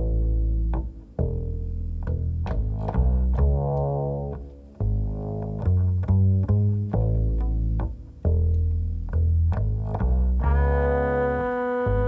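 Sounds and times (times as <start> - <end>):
double bass plucked: 0.0 - 12.0.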